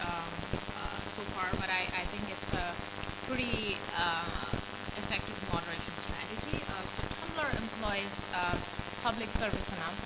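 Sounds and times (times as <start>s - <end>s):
crackling hiss: 0.0s - 10.0s.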